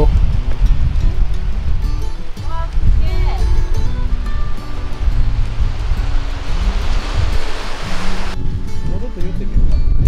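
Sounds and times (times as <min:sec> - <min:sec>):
surf washing over boulders: 0:00.0 - 0:08.4
background music with bass line: 0:00.0 - 0:10.0
wind on microphone: 0:00.0 - 0:10.0.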